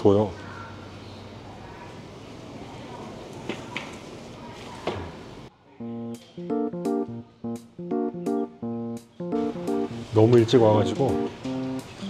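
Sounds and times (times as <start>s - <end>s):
restaurant room noise: 0.0s - 12.0s
plucked guitar music: 5.8s - 12.0s.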